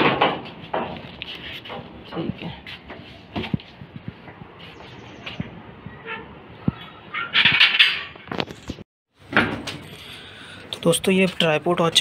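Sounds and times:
metal gate scraping and clanking: 6.0 - 8.5.

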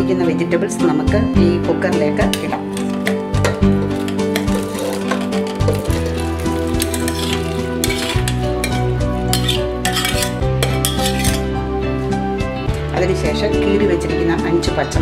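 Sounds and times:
background music with held chords: 0.0 - 15.0
vegetables and water splashing in pot: 3.9 - 11.4.

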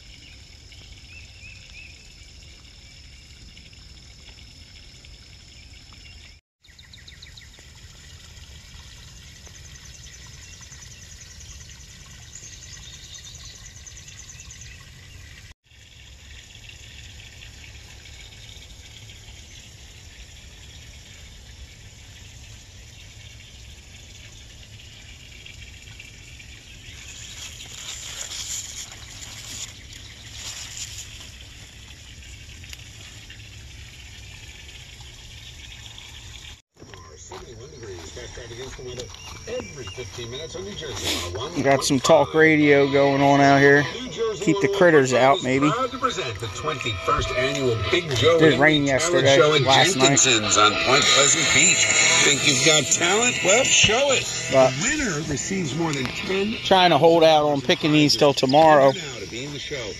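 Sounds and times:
leaves rustling by hand: 27.0 - 31.8.

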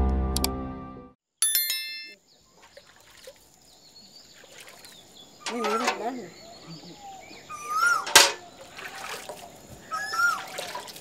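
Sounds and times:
bird chirps: 3.7 - 8.7, 9.4 - 10.6.

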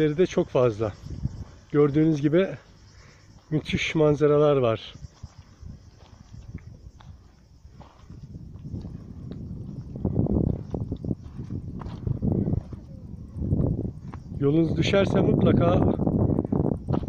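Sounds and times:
low rumbling on microphone: 5.0 - 17.0.

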